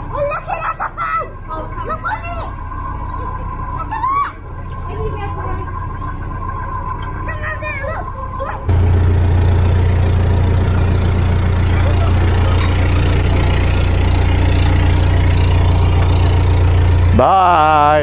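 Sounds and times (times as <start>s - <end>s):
diesel engine ticking over: 0.0s - 18.0s.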